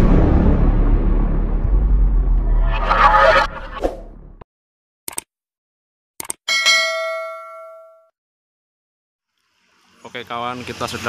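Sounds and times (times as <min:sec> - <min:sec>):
notification bell ding: 0:06.5 - 0:08.1.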